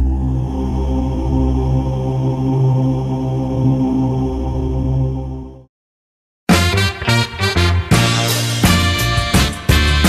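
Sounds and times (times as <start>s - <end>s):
low drone music: 0.0s - 5.7s.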